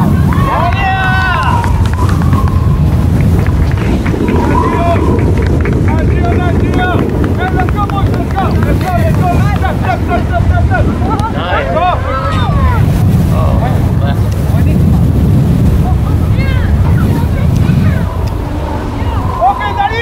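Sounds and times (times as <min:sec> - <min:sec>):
crowd shouting and cheering: 0:00.0 - 0:12.9, 0:16.1 - 0:20.0
wind buffeting microphone: 0:00.0 - 0:20.0.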